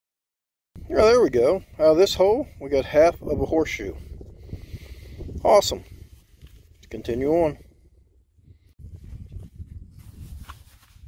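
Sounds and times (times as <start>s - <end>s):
microphone handling rumble: 0.8s - 11.0s.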